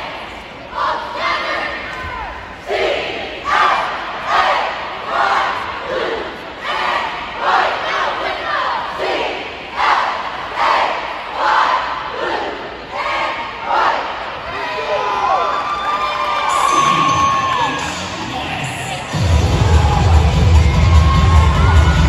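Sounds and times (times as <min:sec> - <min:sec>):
group shouting a cheer in unison: 0:00.8 - 0:22.0.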